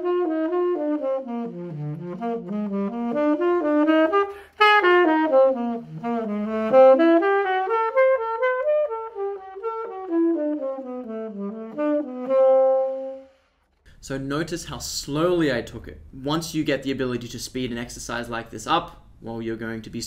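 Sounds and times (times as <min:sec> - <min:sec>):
saxophone playing jazz line: 0:00.0 - 0:13.4
player breathing: 0:04.3 - 0:04.6.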